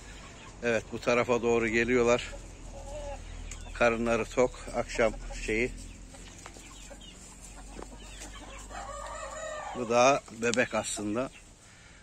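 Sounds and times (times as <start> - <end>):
chickens clucking: 0.0 - 12.0
rooster crowing: 8.4 - 10.0.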